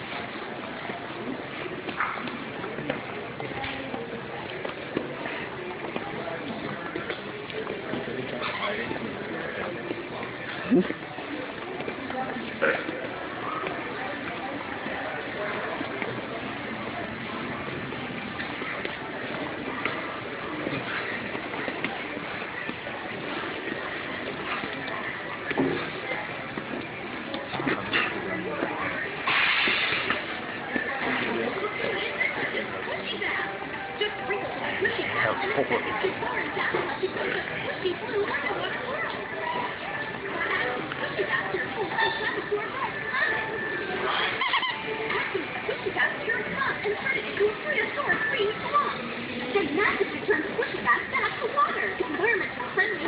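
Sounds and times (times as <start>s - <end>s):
high-pitched voices from television: 31.1s - 53.0s.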